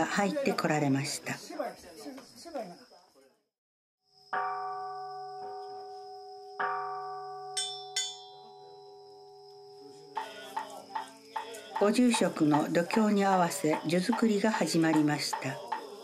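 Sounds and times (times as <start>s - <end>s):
bowl bell ringing: 4.4s - 9.8s
chanting: 9.7s - 16.0s.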